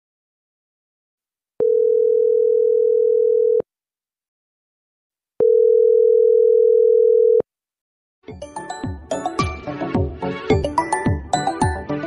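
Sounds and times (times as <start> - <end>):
telephone ringback tone: 1.6 - 3.6, 5.4 - 7.4.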